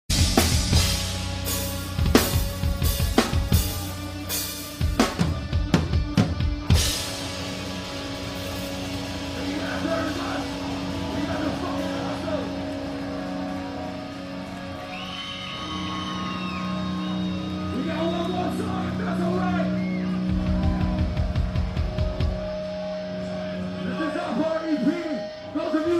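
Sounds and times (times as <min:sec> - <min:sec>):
heavy rapid metal drumming: 0:00.1 - 0:15.0, 0:17.6 - 0:22.9
sustained band drone: 0:00.1 - 0:25.9.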